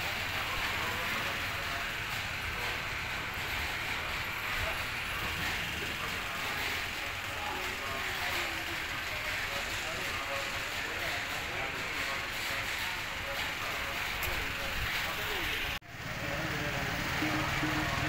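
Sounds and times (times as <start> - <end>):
faint indistinct voices: 0.0 - 18.0
outdoor background noise: 0.0 - 18.0.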